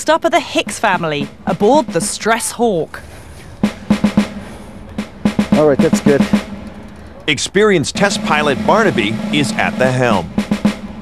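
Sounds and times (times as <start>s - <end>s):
quick drum strikes: 0.6s - 2.5s, 3.5s - 6.9s, 7.8s - 11.0s.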